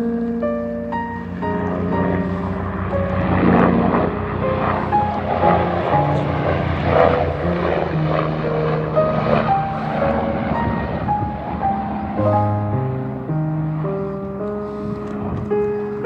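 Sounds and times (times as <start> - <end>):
background music: 0.0 - 15.2
helicopter flying overhead: 0.0 - 16.0.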